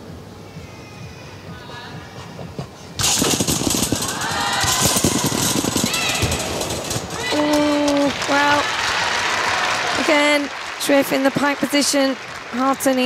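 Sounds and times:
crowd whooping: 3.8 - 11.8
crowd cheering and clapping: 4.0 - 13.0.

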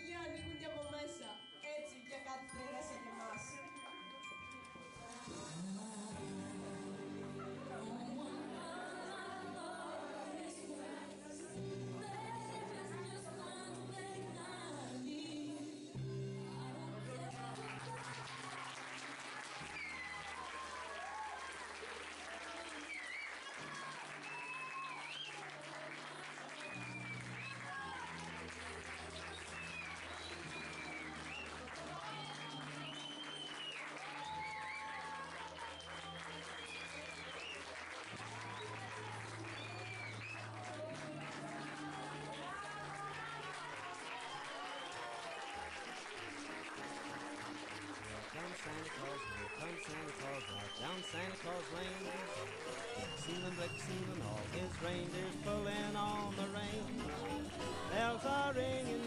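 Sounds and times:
audience clapping: 17.0 - 59.0
voices calling out: 48.4 - 59.0.

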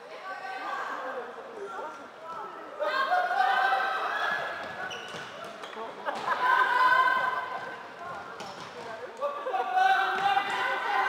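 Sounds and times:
players shouting in a sports hall: 0.0 - 11.0
shoes squeaking on court floor: 4.6 - 6.3.

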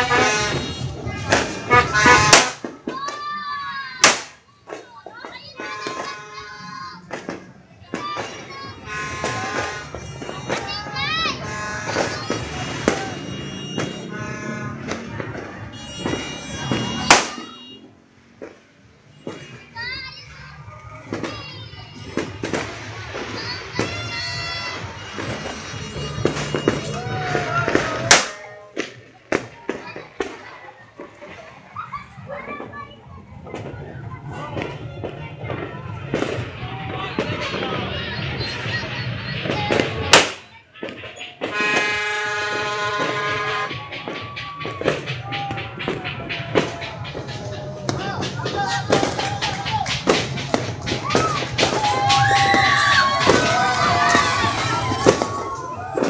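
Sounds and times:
horn blast: 0.0 - 2.6, 11.2 - 17.9, 41.5 - 56.0
loud sharp bang: 0.0 - 3.2, 4.0 - 4.8, 14.8 - 17.6, 26.2 - 30.4
firecracker bang: 0.0 - 3.4, 4.0 - 6.4, 7.0 - 19.8, 21.1 - 31.5, 33.4 - 37.9, 39.4 - 56.0
fireworks crackling: 0.0 - 56.0.

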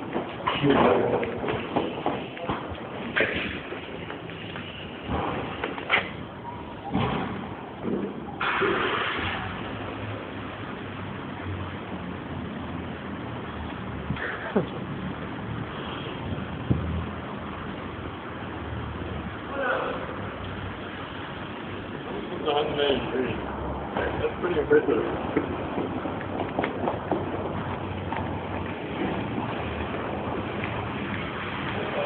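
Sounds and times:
footsteps on concrete: 0.0 - 6.2, 25.2 - 32.0
parking garage background noise: 0.0 - 32.0.

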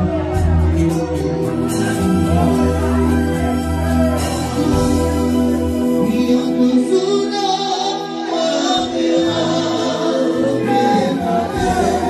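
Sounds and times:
live band music with singing: 0.0 - 12.0.

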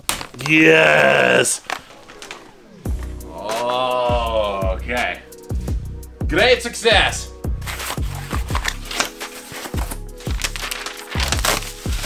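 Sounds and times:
background music with bass beat: 2.4 - 12.0
paper and bubble-wrap rustling: 7.6 - 12.0.

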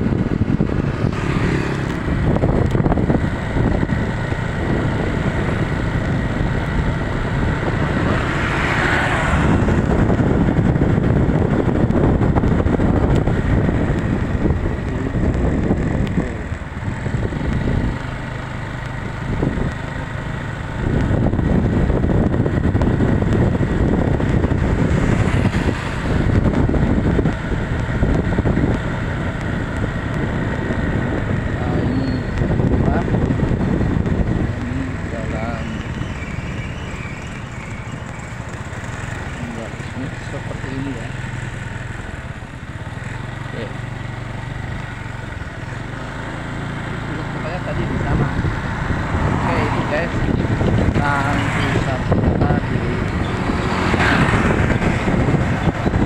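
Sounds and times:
motorcycle engine running: 0.0 - 56.0
wind on microphone: 0.0 - 56.0.

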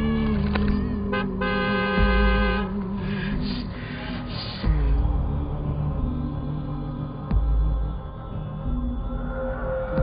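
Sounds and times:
low drone: 0.0 - 10.0.

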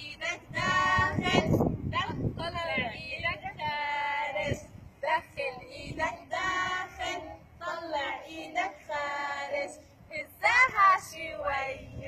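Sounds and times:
children singing in group: 3.9 - 12.0.

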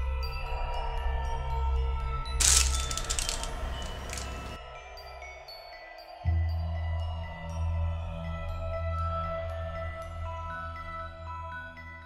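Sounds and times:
plastic wrapper crinkling: 2.4 - 4.6.

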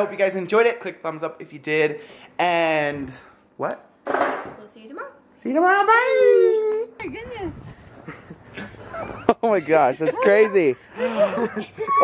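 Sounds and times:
person crying out: 6.0 - 7.0, 11.8 - 12.0.

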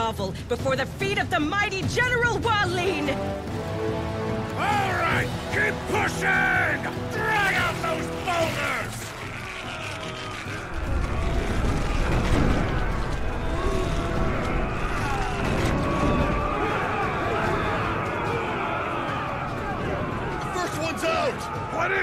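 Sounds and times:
music: 0.0 - 22.0
voices: 4.5 - 22.0
boulder rumbling and grinding: 9.1 - 18.2.

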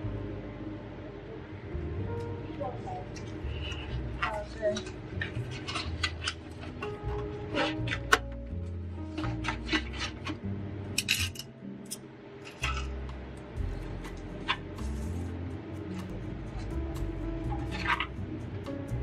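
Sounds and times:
soft background music: 0.0 - 19.0.

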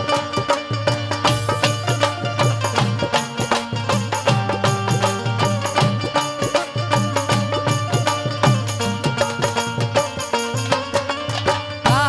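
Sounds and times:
hand drum beating: 0.0 - 12.0.

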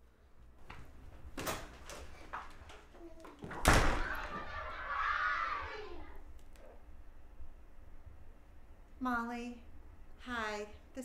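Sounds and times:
door slamming shut: 3.4 - 4.7.

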